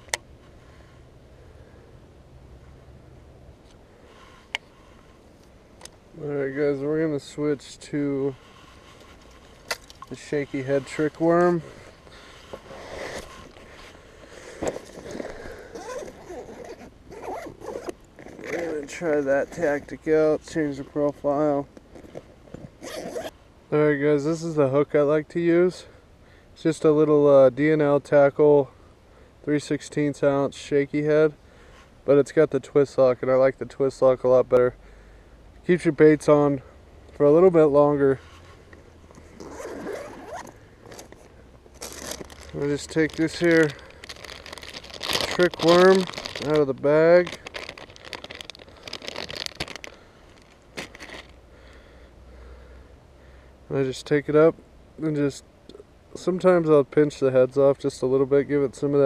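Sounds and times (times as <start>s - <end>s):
rustling and scraping in bag: 8.3s - 19.9s, 21.8s - 23.3s, 38.2s - 51.4s
zipper being pulled open: 12.5s - 13.7s, 14.6s - 19.6s, 21.9s - 23.4s, 39.2s - 46.6s
bag unzipping: 12.6s - 13.6s, 14.6s - 18.9s, 22.8s - 23.3s, 39.3s - 41.1s, 41.8s - 46.7s.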